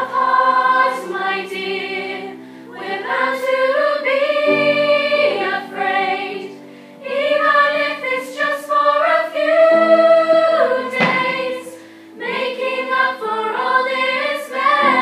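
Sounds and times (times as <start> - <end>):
girls' choir singing: 0.0 - 15.0.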